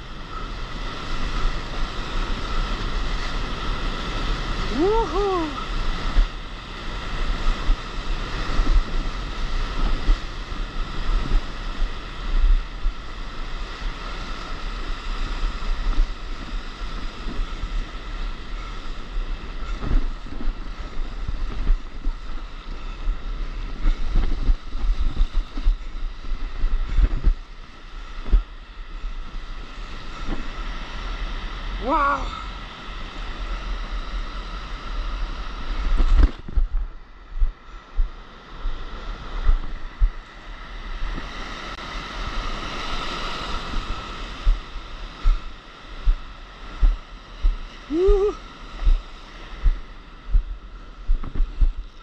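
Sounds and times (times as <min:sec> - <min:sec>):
wind buffeting microphone: 0:00.0 - 0:52.0
whitewater rushing: 0:02.9 - 0:06.0.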